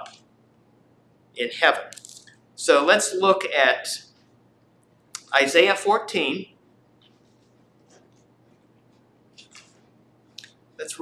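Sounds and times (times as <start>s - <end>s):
paper pages rustling: 9.4s - 9.9s.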